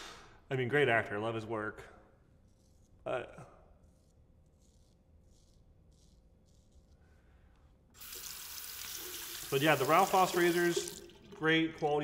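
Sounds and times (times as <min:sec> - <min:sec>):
razor scraping stubble: 0:02.3 - 0:07.2
faucet water running into basin: 0:08.0 - 0:12.0.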